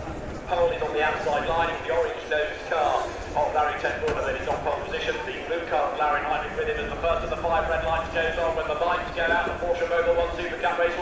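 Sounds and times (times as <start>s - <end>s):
man talking over loudspeakers: 0.5s - 11.0s.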